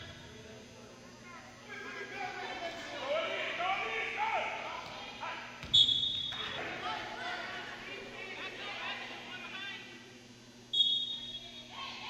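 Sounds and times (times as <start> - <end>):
referee's whistle blast: 5.7 - 6.4, 10.7 - 11.4.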